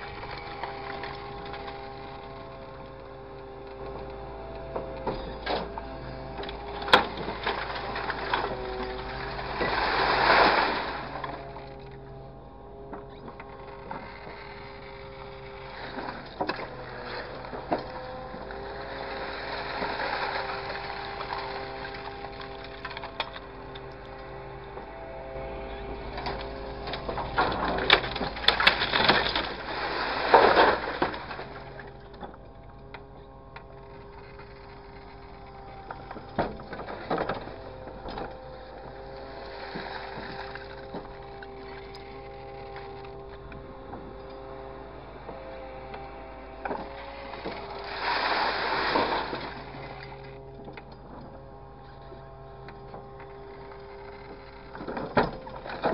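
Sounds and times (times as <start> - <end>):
engine surges: 0.0 - 55.9
truck engine and hydraulics humming: 0.0 - 55.9.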